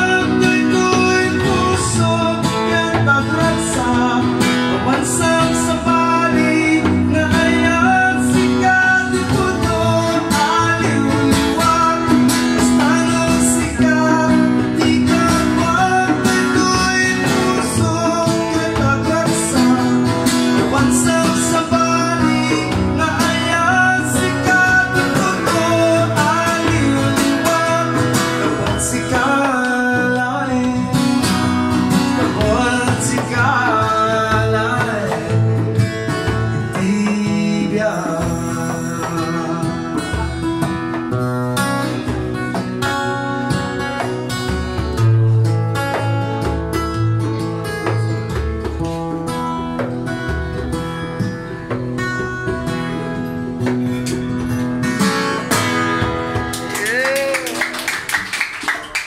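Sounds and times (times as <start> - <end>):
man singing: 0.0 - 47.0, 56.8 - 57.6
acoustic guitar strumming: 0.0 - 58.1.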